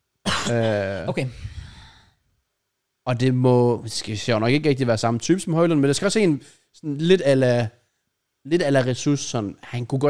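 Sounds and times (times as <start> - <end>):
man speaking: 0.3 - 1.4, 3.1 - 7.8, 8.4 - 10.0.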